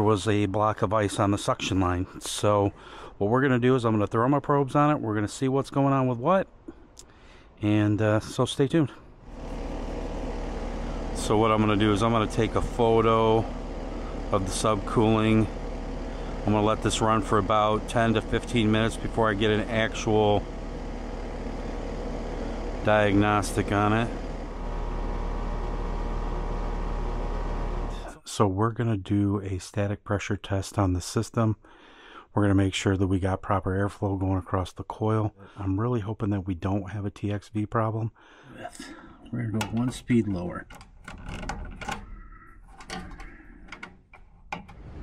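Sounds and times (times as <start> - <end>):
air conditioner hum: 0.0 - 28.4
rushing air noise: 44.8 - 45.0.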